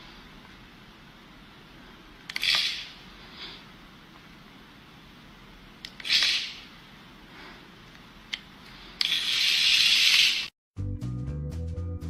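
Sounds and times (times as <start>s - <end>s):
background music with bass and beat: 10.8s - 12.0s.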